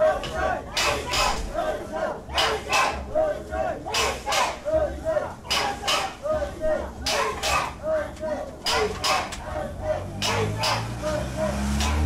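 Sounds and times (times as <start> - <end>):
crowd chanting in unison: 0.0 - 12.0
low rhythmic thuds: 0.0 - 12.0.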